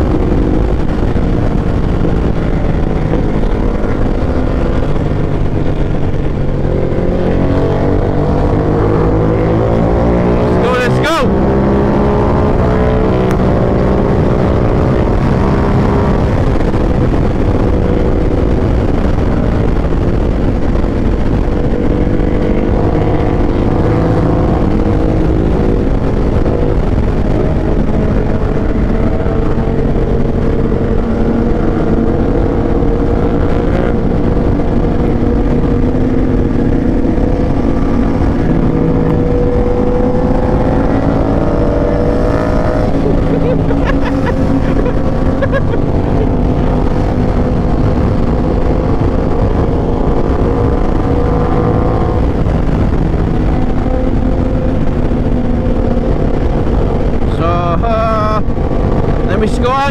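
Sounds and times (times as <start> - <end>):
motorcycle engine cruising: 0.0 - 59.9
wind noise on microphone: 0.0 - 59.9.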